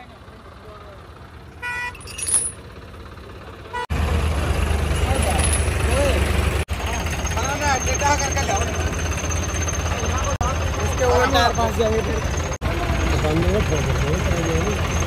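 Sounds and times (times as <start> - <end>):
diesel engine idling: 0.0 - 15.0
vehicle horn toot: 1.6 - 2.1
men talking: 7.3 - 8.9, 10.0 - 14.9.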